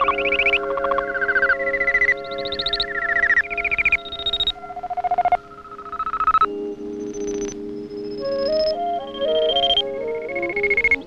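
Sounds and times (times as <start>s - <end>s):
pulsing synthesizer beeps: 0.0s - 11.0s.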